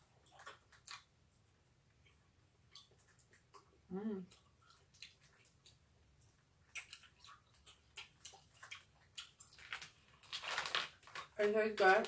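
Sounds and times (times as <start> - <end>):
candy wrappers crinkling: 9.2 - 12.0.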